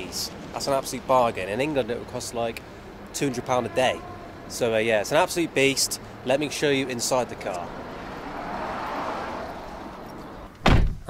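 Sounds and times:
car door slamming: 10.5 - 11.0.

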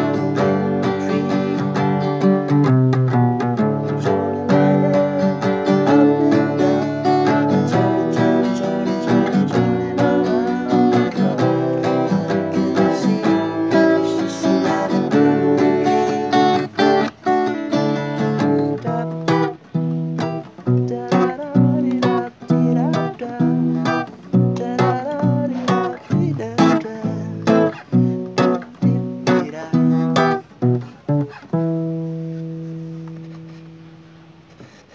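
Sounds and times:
acoustic guitar strumming chords: 0.0 - 34.9.

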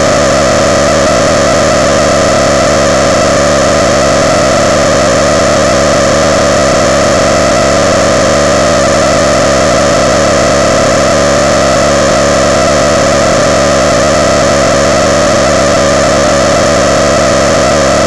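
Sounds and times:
harsh distorted electronic noise: 0.0 - 18.0.

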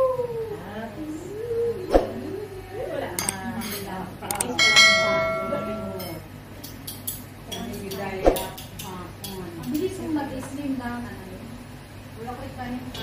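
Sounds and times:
tableware clattering: 3.2 - 6.2
bell-like clink: 4.6 - 5.8.

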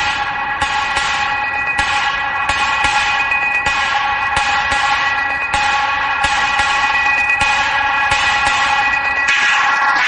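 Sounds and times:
sharp percussion hits: 0.0 - 10.0.

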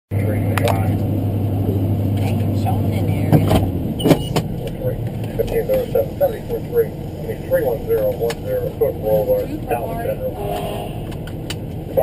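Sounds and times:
steady low hum: 0.1 - 12.0.

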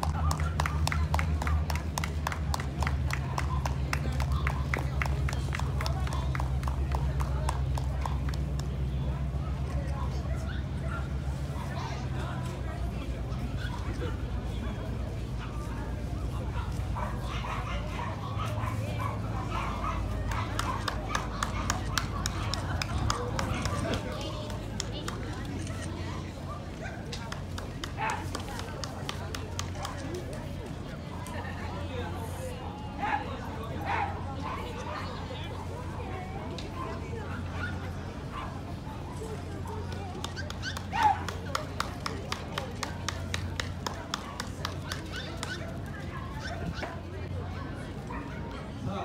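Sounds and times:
background chatter: 0.0 - 49.0
dog barking: 16.6 - 22.2.

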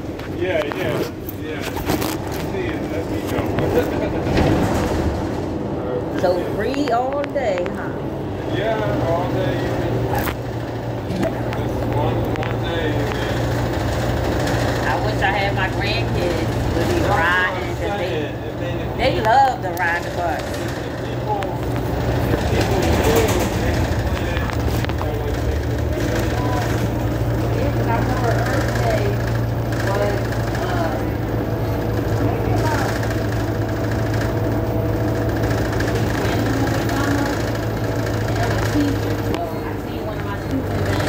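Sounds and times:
bus engine hum: 0.0 - 41.0
faint passenger voices: 0.0 - 41.0.

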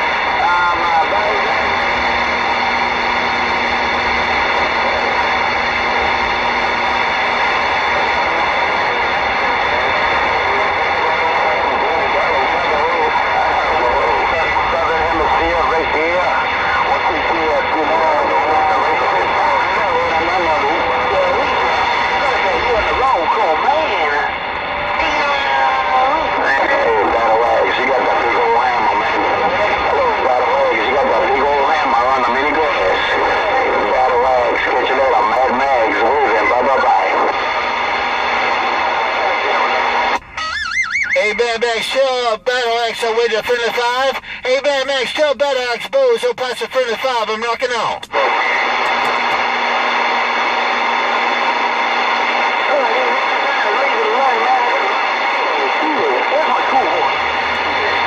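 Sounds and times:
garbled radio voices: 0.0 - 58.0
radio static: 0.0 - 58.0.

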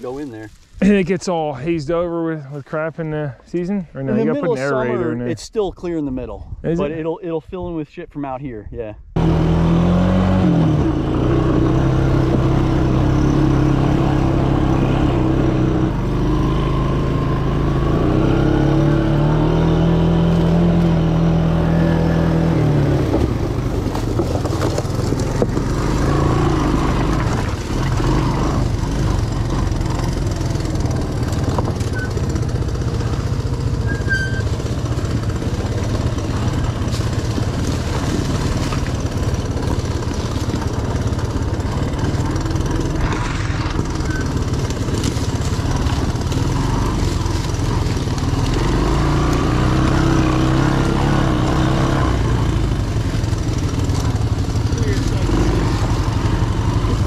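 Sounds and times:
three-wheeler engine running: 9.2 - 57.0.

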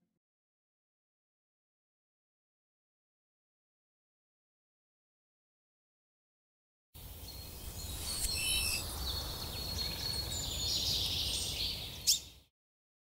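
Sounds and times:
birds chirping: 7.0 - 12.4.

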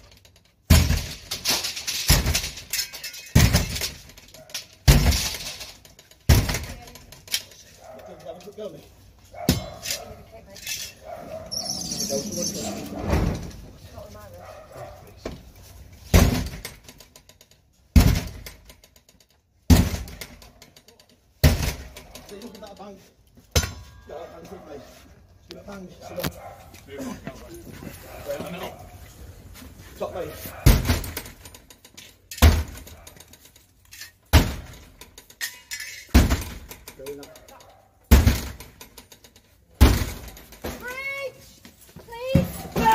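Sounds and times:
high-pitched shout: 42.1 - 42.9.

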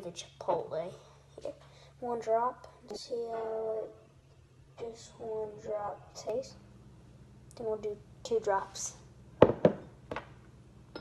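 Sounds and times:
glass bottle knocking on table: 9.4 - 9.8.

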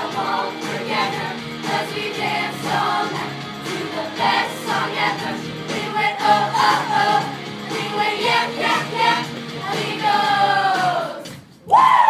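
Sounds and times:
children's choir singing pop song: 0.0 - 11.5
instrumental music: 0.0 - 11.5.

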